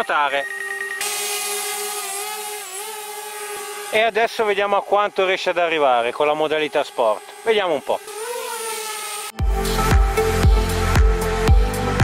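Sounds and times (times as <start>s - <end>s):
drone propellers buzzing: 0.0s - 12.0s.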